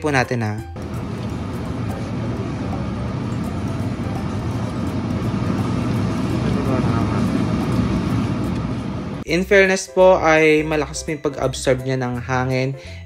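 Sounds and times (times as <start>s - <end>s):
range hood fan running: 0.0s - 9.4s.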